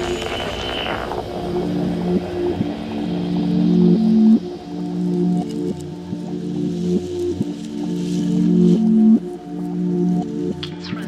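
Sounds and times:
low sustained synth notes: 0.0 - 11.0.

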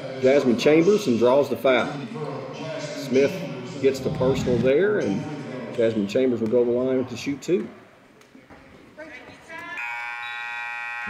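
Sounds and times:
buzzing scoreboard horn: 9.8 - 11.0.

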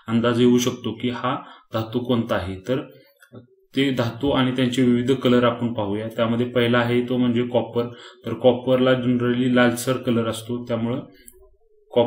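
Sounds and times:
man narrating: 0.0 - 12.0.

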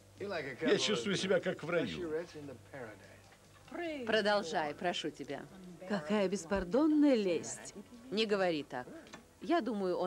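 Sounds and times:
person speaking: 1.7 - 2.1
woman speaking: 3.7 - 10.0.

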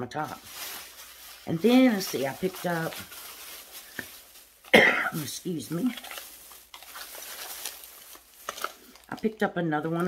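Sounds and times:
packaging rustling and clicking: 0.3 - 10.0.

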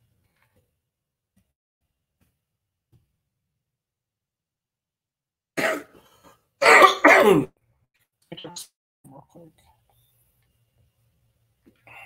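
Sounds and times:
person clearing throat: 5.6 - 6.0, 6.6 - 7.5.

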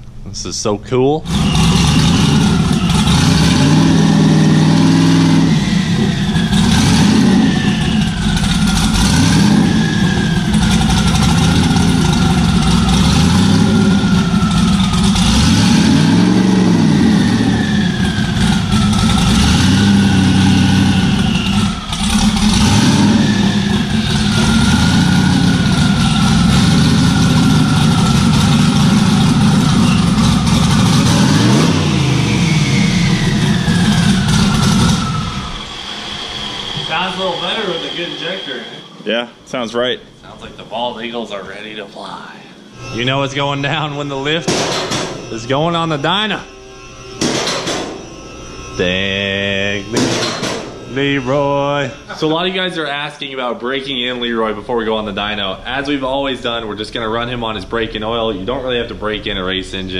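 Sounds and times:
high whine: 0.0 - 59.9
race car engine idling: 1.3 - 38.5.

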